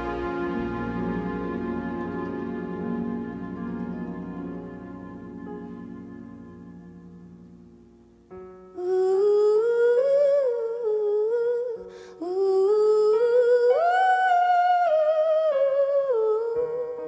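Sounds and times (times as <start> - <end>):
soft sustained accompaniment: 0.0 - 17.0
woman singing wordless melody: 8.6 - 17.0.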